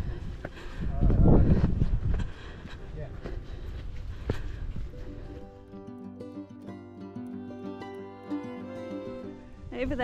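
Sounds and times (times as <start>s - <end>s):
wind rumbling on microphone: 0.0s - 5.4s
background music with plucked notes: 4.9s - 10.0s.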